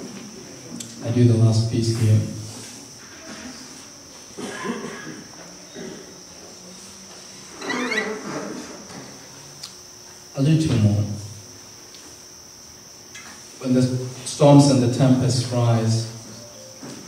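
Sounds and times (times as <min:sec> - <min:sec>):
man speaking into a microphone: 0:01.0 - 0:02.5, 0:10.4 - 0:11.4, 0:13.6 - 0:16.3
steady high-pitched tone: 0:14.7 - 0:17.0.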